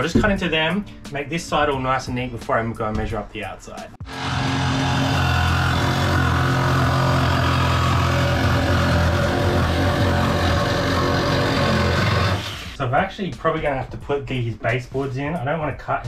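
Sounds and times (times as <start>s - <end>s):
jigsaw cutting sheet metal: 4.0s - 12.8s.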